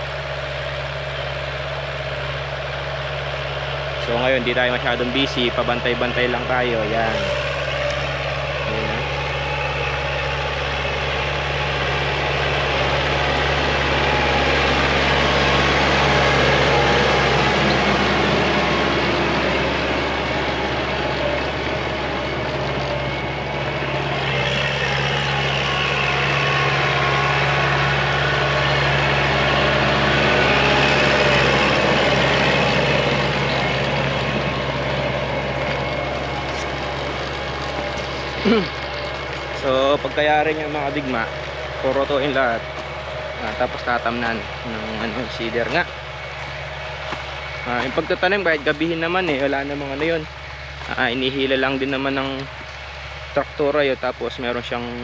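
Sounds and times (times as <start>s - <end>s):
tractor diesel engine under load: 0.0s - 55.0s
rotary tiller churning soil: 3.4s - 53.6s.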